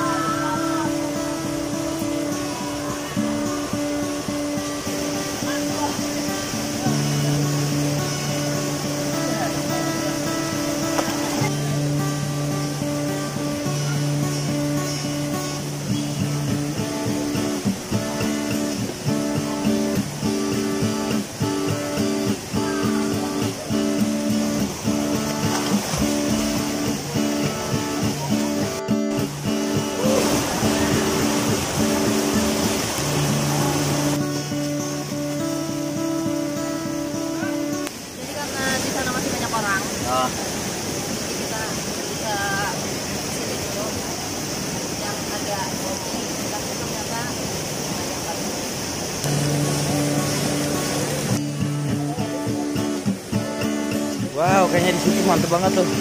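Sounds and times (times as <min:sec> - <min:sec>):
guitar background music: 0:00.0 - 0:40.5, 0:49.0 - 0:56.0.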